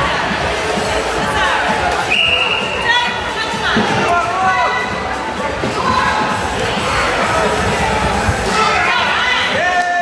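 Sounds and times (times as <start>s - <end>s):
echoing voices and shouts: 0.0s - 10.0s.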